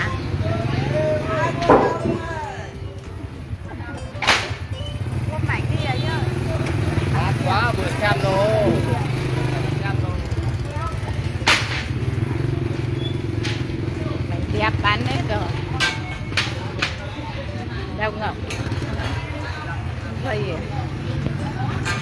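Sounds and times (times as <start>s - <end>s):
people talking: 0.0s - 3.0s, 3.6s - 22.0s
motorbike engine running: 4.8s - 16.6s, 17.9s - 22.0s.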